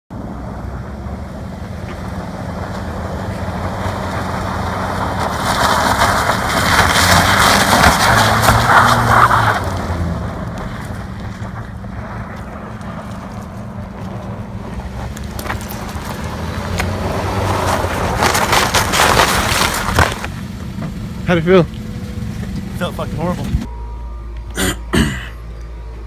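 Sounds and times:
car engine running: 0.1 - 26.0.

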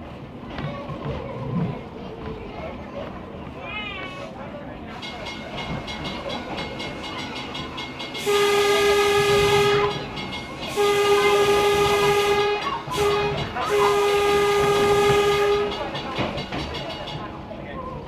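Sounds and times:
railcar rolling noise: 0.0 - 18.0
railcar horn blasts: 8.2 - 16.1.

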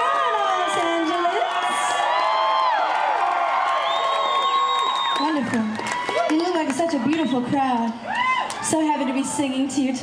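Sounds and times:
audience cheering and screaming: 0.0 - 9.9.

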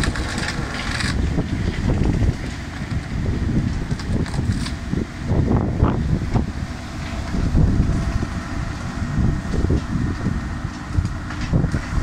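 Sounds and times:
excavator diesel engine running: 0.0 - 12.0
tree shear cutting tree: 0.0 - 12.0
wind buffeting microphone: 0.0 - 12.0.

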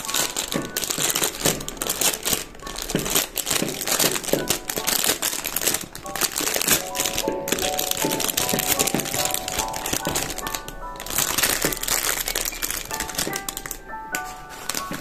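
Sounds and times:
plastic bag crinkling: 0.0 - 15.0
soft background music: 0.0 - 15.0.

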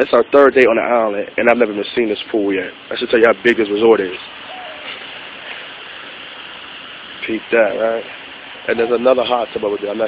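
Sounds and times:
steady rushing hiss: 0.0 - 10.0.

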